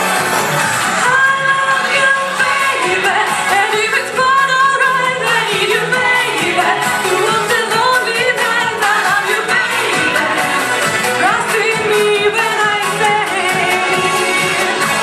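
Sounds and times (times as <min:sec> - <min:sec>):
musical accompaniment: 0:00.0 - 0:15.0
woman singing into microphone: 0:01.0 - 0:15.0.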